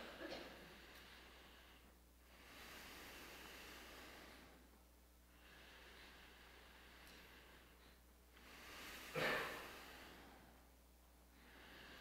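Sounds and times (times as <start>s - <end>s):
faint slow breathing: 0.0s - 12.0s
low steady hum: 0.0s - 12.0s.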